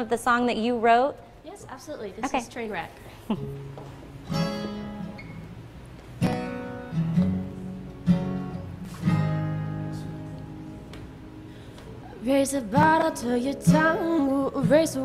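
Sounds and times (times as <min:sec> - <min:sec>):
acoustic guitar chords strummed: 0:03.3 - 0:15.0.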